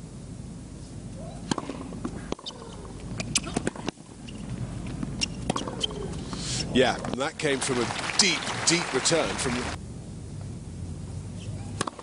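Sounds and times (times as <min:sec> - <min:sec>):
crowd murmuring: 0:06.6 - 0:09.8.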